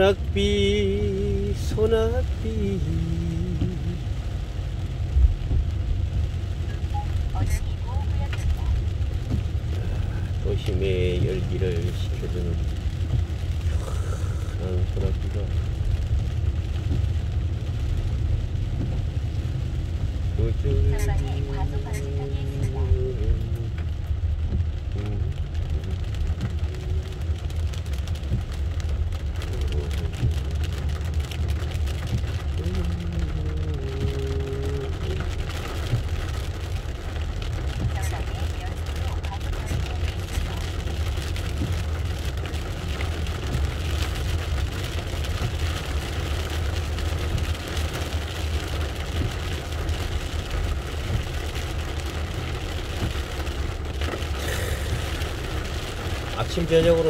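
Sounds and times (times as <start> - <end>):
engine and road rumble: 0.0 - 57.0
rain on car: 0.0 - 57.0
tyres hissing on wet road: 0.0 - 57.0.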